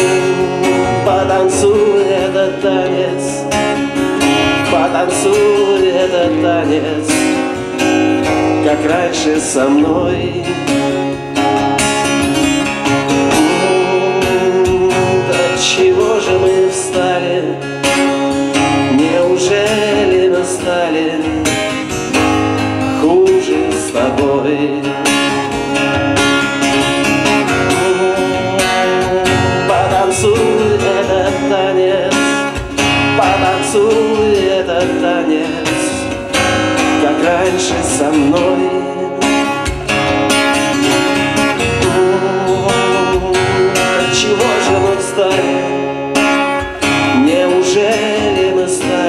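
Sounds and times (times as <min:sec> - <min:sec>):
acoustic guitar strummed and picked: 0:00.0 - 0:49.0.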